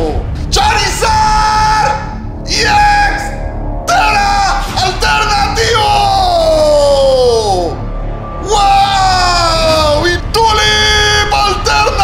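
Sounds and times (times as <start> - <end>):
loud background music: 0.0 - 12.0
man yelling: 0.5 - 7.8, 8.4 - 12.0.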